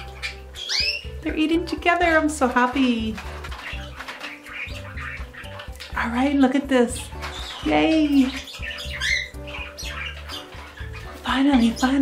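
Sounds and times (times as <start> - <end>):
background music: 0.0 - 12.0
parakeet chirping: 0.0 - 12.0.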